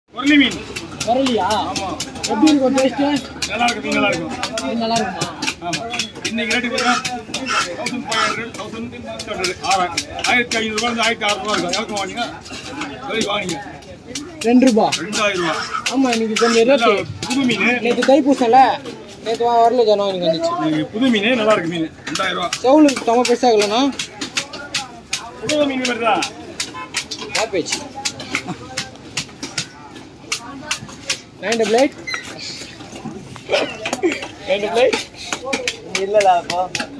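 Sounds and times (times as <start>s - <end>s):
knife chopping fish on wood: 0.2s - 18.6s, 22.0s - 33.2s, 33.9s - 36.9s
knife cutting fish on wood: 14.1s - 16.6s.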